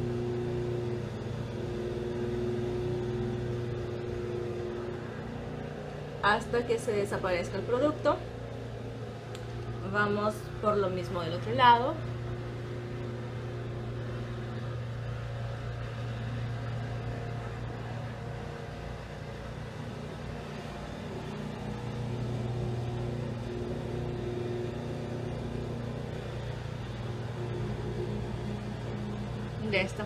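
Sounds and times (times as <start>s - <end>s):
low background hum: 0.0s - 30.0s.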